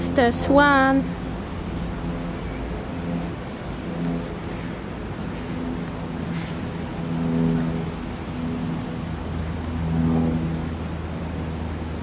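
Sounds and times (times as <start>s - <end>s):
constant rushing noise: 0.0s - 12.0s
low engine-like hum: 0.0s - 12.0s
steady pitched tones: 0.0s - 12.0s.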